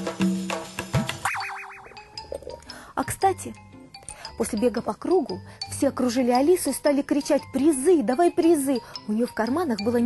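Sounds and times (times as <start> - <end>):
cartoon wobbling boing effect: 1.2 - 2.6.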